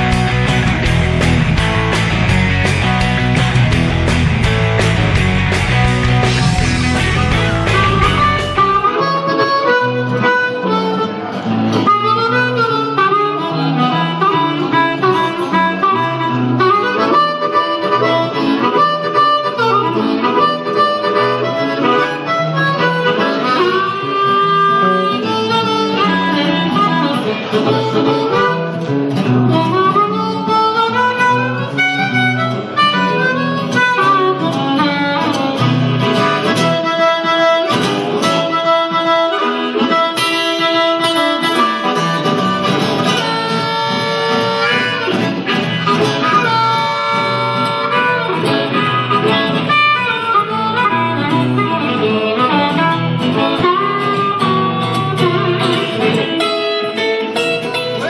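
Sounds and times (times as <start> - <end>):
acoustic-electric guitar accompaniment: 0.0 - 58.0
blues harmonica solo: 0.0 - 58.0.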